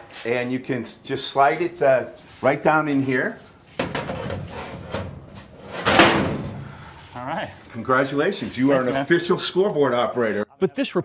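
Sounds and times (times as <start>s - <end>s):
metal plate scraping: 3.8s - 6.7s.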